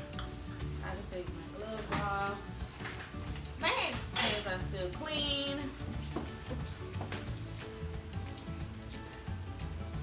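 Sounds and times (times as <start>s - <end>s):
background music: 0.0s - 10.0s
tableware clattering: 4.0s - 4.7s.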